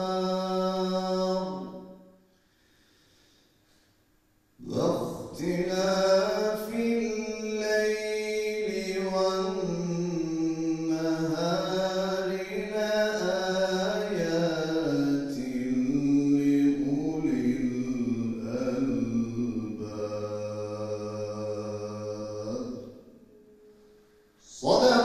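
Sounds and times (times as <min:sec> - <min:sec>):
man chanting into microphone: 0:00.0 - 0:01.8, 0:04.6 - 0:23.0, 0:24.4 - 0:25.0.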